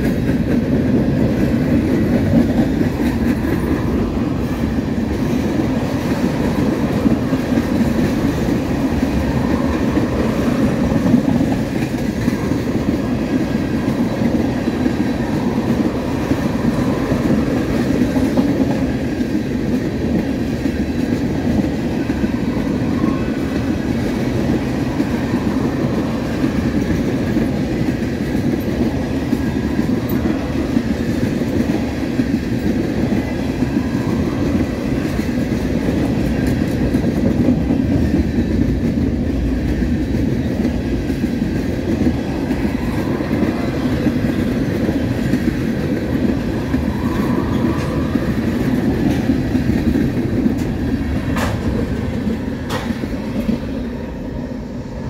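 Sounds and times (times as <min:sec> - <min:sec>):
freight train rolling past: 0:00.0 - 0:55.0.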